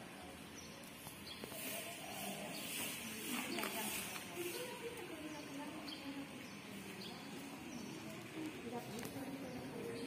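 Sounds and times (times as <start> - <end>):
lovebirds twittering: 0.0 - 10.0.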